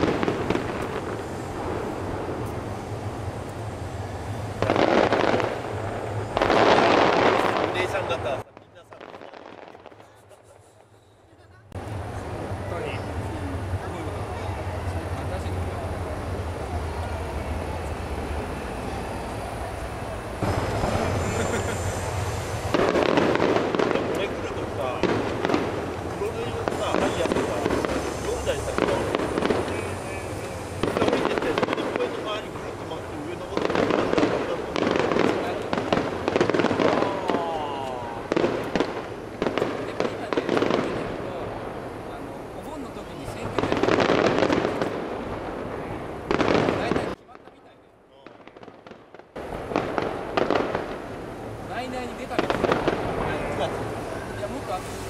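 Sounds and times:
firework shells bursting: 0.0s - 11.0s, 19.3s - 55.0s.

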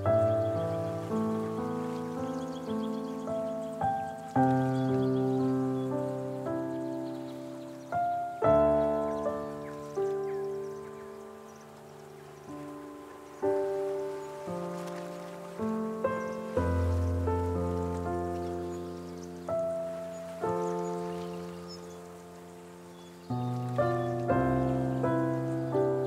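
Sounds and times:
slow solo piano: 0.0s - 26.0s.

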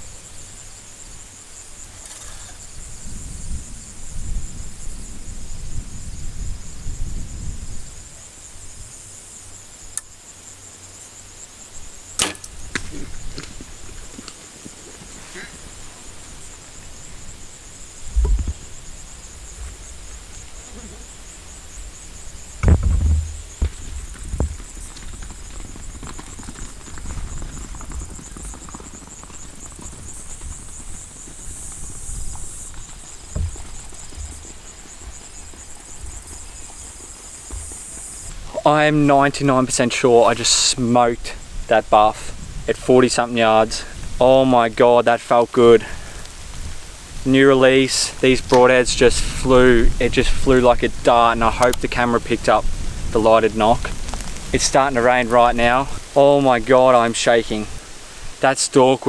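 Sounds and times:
bow string snap: 12.2s - 13.0s
dull heavy thumps: 18.1s - 18.7s, 22.5s - 24.8s, 33.2s - 34.6s, 37.4s - 38.4s.

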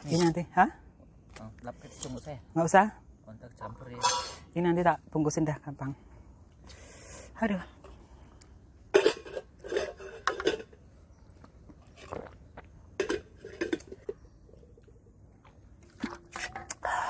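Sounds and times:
metal containers clinking: 8.9s - 10.8s, 13.0s - 14.2s, 15.8s - 16.8s.

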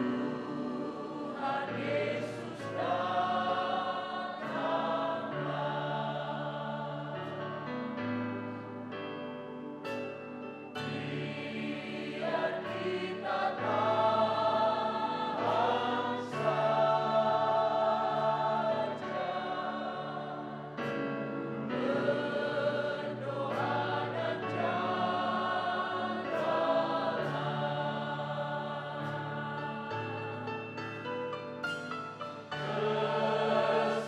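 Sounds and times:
mixed choir singing: 0.0s - 8.8s, 10.7s - 31.0s, 32.2s - 34.0s.

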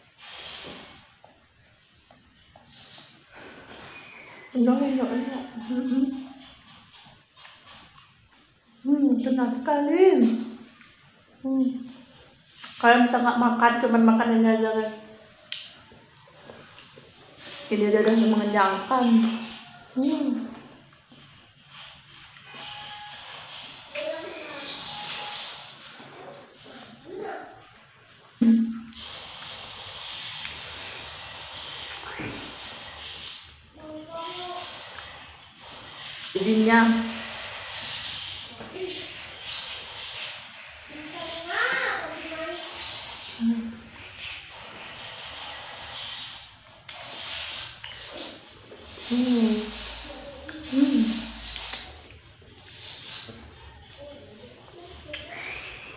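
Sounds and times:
chewing and wet mouth sounds: 51.4s - 55.9s.

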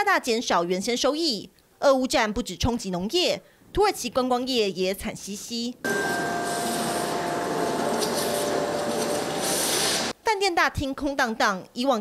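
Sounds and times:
steady rushing room noise: 5.9s - 10.2s.

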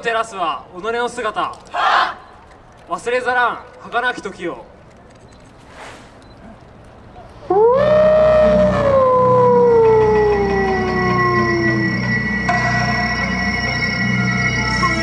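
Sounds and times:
long howl-like call: 7.4s - 13.6s.

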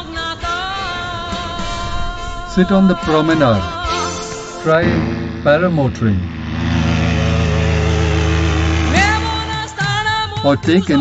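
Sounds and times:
sung note in background music: 4.7s - 6.3s
paramotor engine and propeller drone: 4.8s - 10.0s.

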